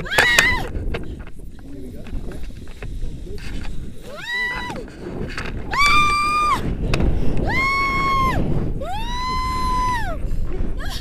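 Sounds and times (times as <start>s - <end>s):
wind rumble on microphone: 0.0s - 11.0s
woman screaming woo: 5.7s - 6.6s, 7.4s - 10.2s.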